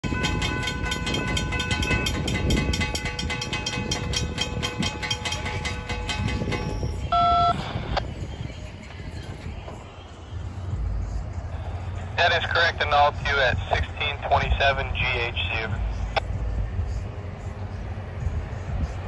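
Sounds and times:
crossing warning bells ringing: 0.0s - 7.8s
short loud beep: 7.1s - 7.6s.

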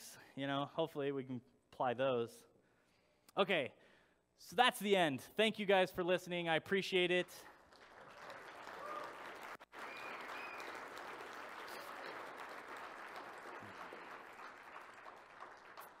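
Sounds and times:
audience applause: 7.4s - 16.0s.

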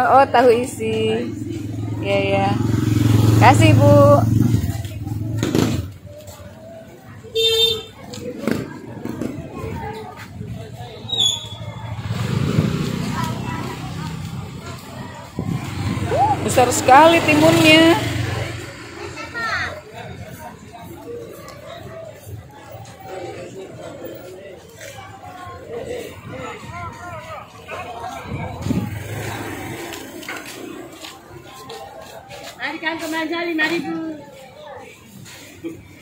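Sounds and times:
motorcycle engine passing: 0.0s - 6.5s, 11.3s - 20.4s, 27.5s - 32.4s
faint distant voices: 0.0s - 36.0s
high-pitched squeak: 11.0s - 11.9s.

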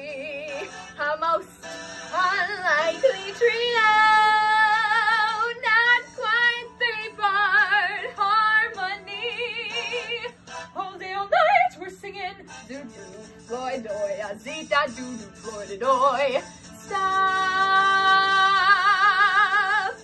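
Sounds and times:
woman singing wordless vocal runs: 10.8s - 20.0s.

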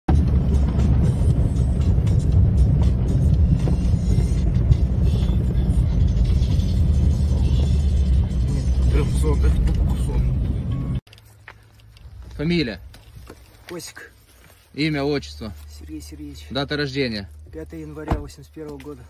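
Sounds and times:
car interior road noise: 0.1s - 19.0s.

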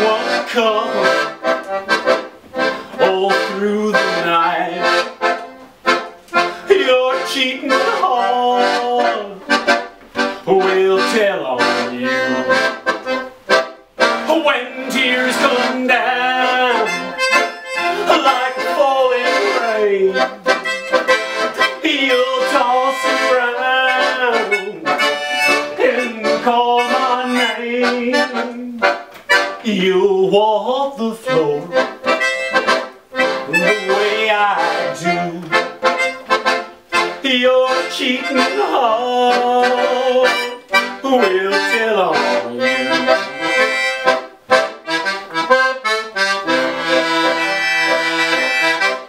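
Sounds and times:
melodica: 0.0s - 49.0s
piano accordion: 0.0s - 49.0s.

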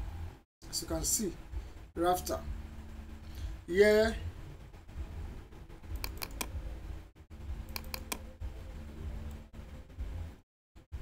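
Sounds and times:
low steady hum: 0.0s - 11.0s
computer mouse clicking: 5.9s - 6.6s, 7.6s - 8.3s.

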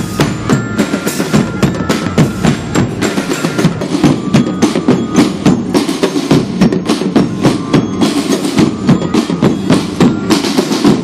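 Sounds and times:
bass drums: 0.0s - 11.0s
snare drums playing fast beat: 0.0s - 11.0s.

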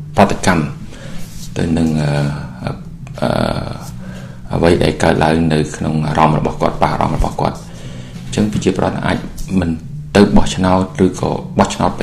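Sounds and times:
man saying uhh: 1.9s - 4.6s.

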